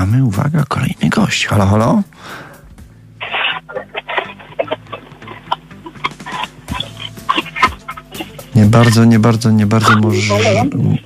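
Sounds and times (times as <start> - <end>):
steady low hum: 0.0 - 11.0
choppy telephone line sounds: 3.2 - 11.0.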